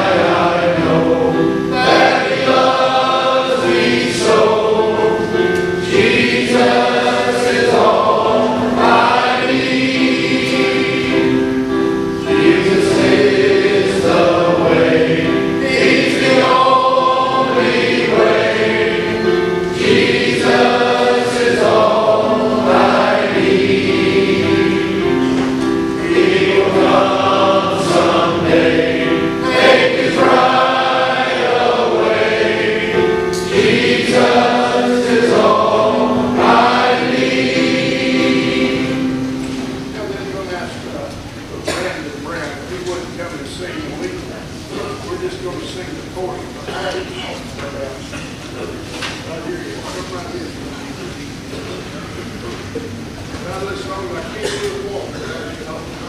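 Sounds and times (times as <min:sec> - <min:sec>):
men's choir singing in harmony: 0:00.0 - 0:40.8.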